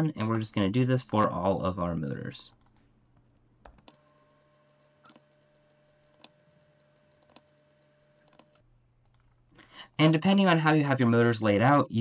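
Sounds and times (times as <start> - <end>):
faint computer clicks: 3.6 - 9.3.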